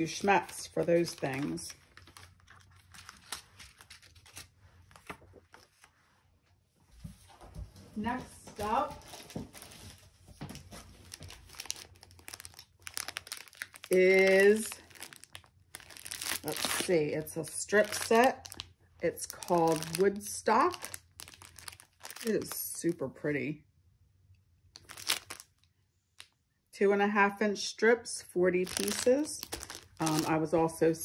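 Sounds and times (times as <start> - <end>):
plastic wrapping crinkling: 0.0 - 6.0, 8.1 - 22.9, 24.7 - 26.4, 28.6 - 30.6.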